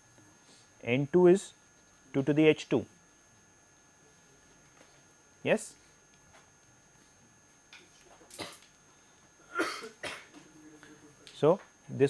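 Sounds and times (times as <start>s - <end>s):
person coughing: 8.3s - 8.6s, 9.4s - 10.4s.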